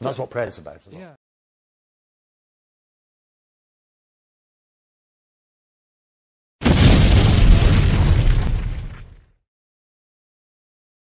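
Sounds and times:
loud boom burst: 6.6 - 9.4.

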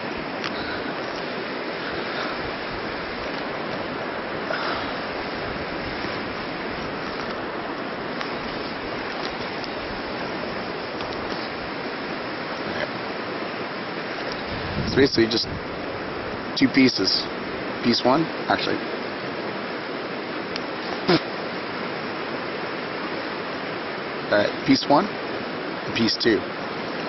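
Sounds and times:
river water rushing: 0.0 - 27.0.

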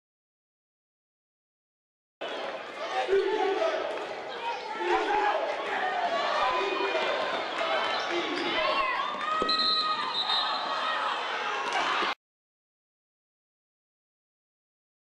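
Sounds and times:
players' voices echoing: 2.2 - 12.1.

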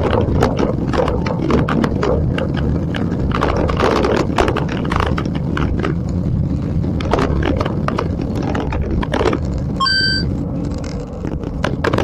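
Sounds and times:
wind rushing over microphone: 0.0 - 12.0
short electronic beep: 9.8 - 10.3.

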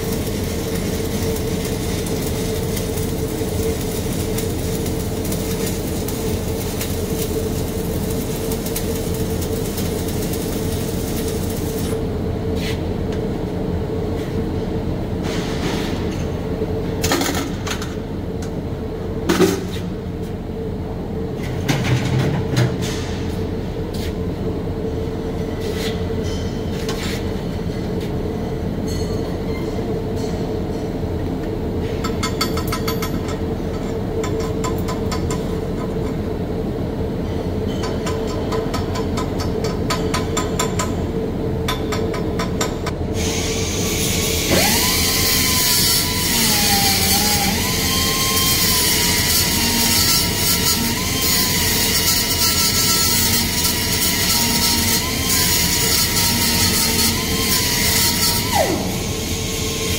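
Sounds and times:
welding arc crackling: 0.0 - 12.1, 44.2 - 59.9.

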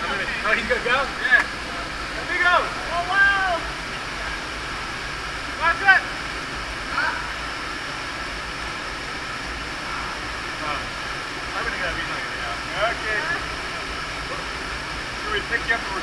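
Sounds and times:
waterfall rushing into gorge: 0.0 - 16.0.

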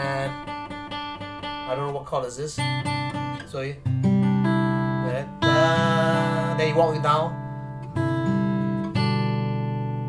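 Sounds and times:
acoustic guitar chords ringing: 0.0 - 10.0.

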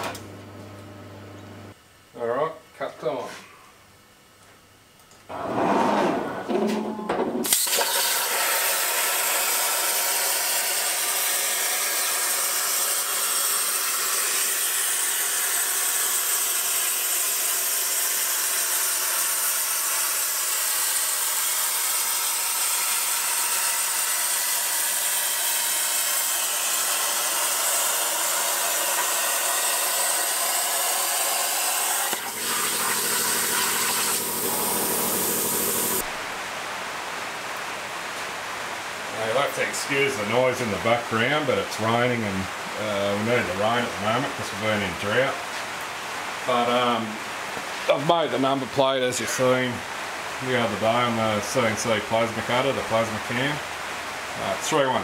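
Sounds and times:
plasma cutter hissing: 7.4 - 36.1.

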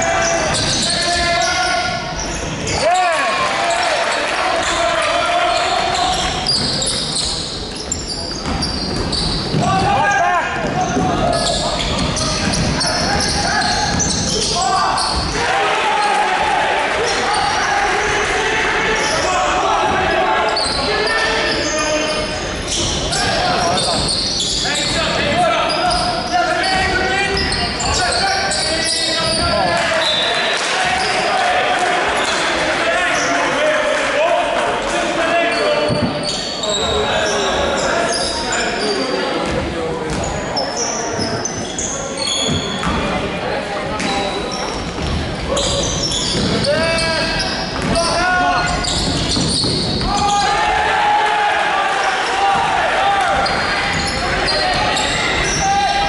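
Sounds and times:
players and spectators calling out: 0.0 - 56.0.

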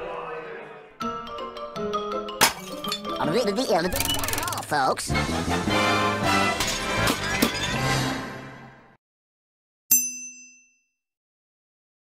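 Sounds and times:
metallic chime ding: 9.9 - 11.0.

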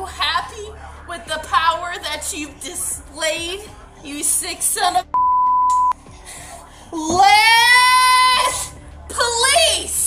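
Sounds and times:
censor bleep: 5.1 - 6.0.

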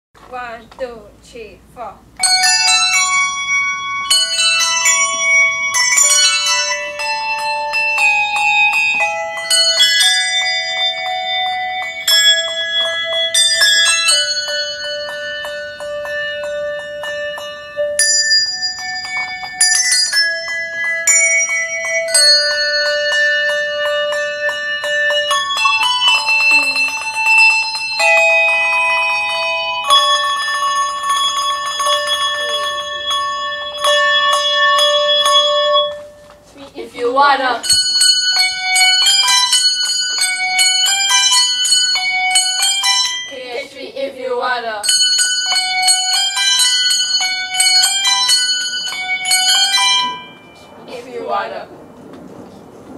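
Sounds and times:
handbells ringing a pop tune: 2.2 - 36.6, 37.6 - 43.8, 44.8 - 51.4.

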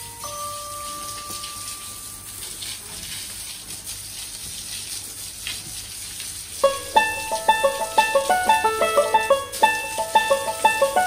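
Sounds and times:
held chime note: 0.0 - 2.5
hose water spraying: 0.0 - 11.0
plucked-string music: 6.6 - 11.0.

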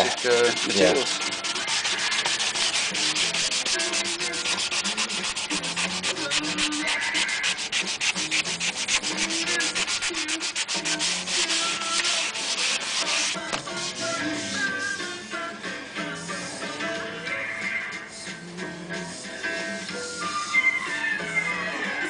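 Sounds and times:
sandpaper rubbing on wood: 0.0 - 15.0.

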